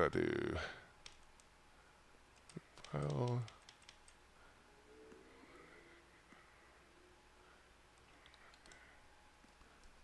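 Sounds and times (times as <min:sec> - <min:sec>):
keyboard clicks: 0:02.3 - 0:04.2, 0:08.0 - 0:10.0.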